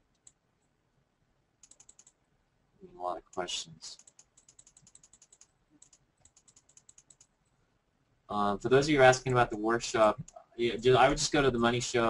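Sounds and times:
faint typing on keyboard: 0:00.0 - 0:00.8, 0:01.6 - 0:02.2, 0:03.1 - 0:07.6, 0:08.6 - 0:10.6.

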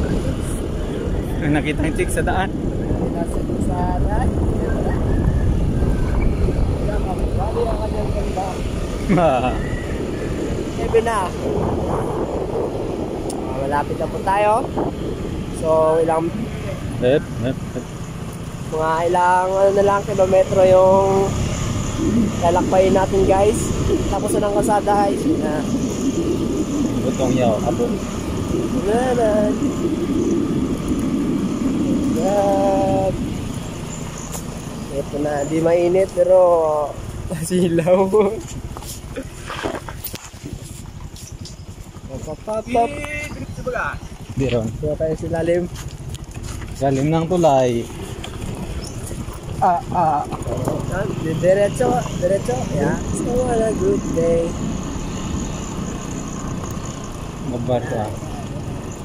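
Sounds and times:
vehicle rumbling along road: 0:00.0 - 0:59.0
voices calling: 0:00.0 - 0:59.0
wind buffeting microphone: 0:00.0 - 0:59.0.

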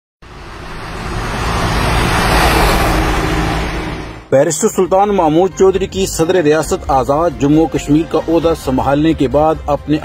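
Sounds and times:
whoosh sound effect: 0:00.6 - 0:04.3.

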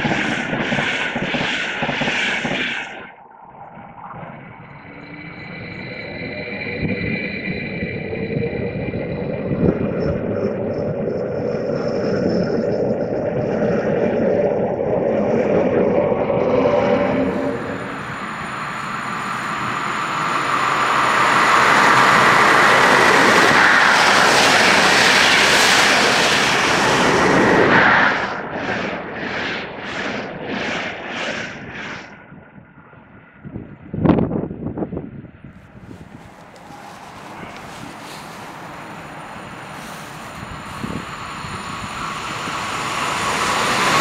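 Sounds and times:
train wheels rumbling on rails: 0:00.0 - 0:03.1, 0:16.2 - 0:27.7, 0:35.6 - 0:44.0
passing train rushing: 0:04.6 - 0:28.5, 0:35.6 - 0:44.0.

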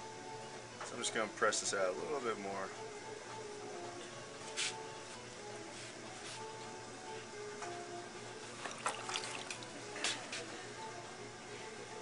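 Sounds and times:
faint background music: 0:00.0 - 0:12.0
wet clay splashing: 0:08.6 - 0:09.8.

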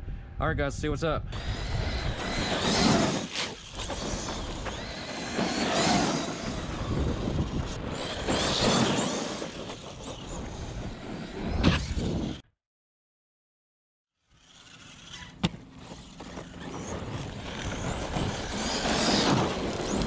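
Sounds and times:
rc truck motor whining: 0:01.3 - 0:12.4, 0:14.2 - 0:20.0
tyre noise on rough pavement: 0:01.4 - 0:12.4, 0:14.6 - 0:20.0.

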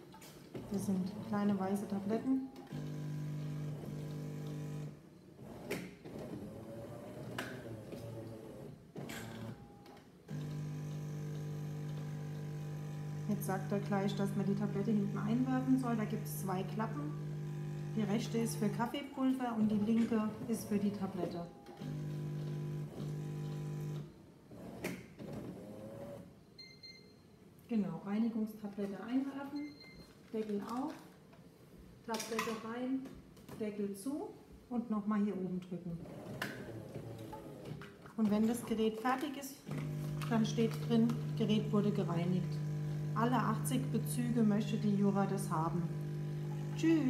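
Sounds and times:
coffee machine pump hum: 0:00.6 - 0:05.0, 0:10.3 - 0:19.0, 0:21.8 - 0:24.0, 0:39.7 - 0:47.0.

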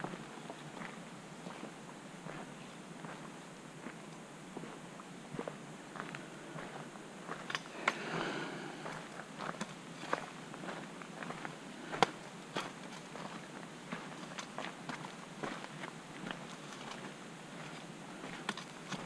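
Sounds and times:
footsteps on dirt trail: 0:00.0 - 0:19.0.

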